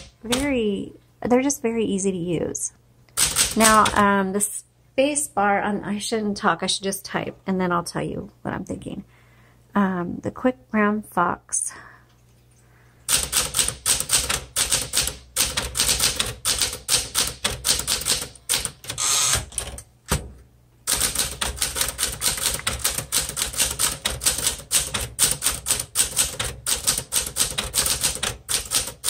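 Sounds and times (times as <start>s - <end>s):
manual typewriter keys clacking: 0.0s - 0.6s, 3.1s - 4.1s, 13.1s - 20.2s, 20.9s - 29.0s.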